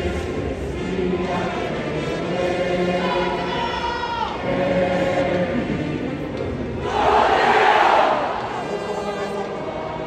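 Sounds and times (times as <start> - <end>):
many voices singing together: 0.0 - 10.0.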